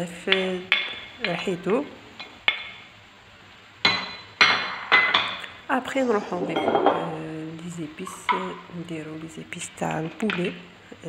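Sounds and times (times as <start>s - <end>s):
glass bowl clinking on frying pan: 3.9s - 5.4s.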